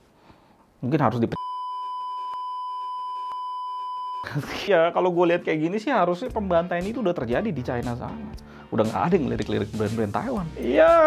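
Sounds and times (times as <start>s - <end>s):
censor bleep: 1.4s - 4.4s.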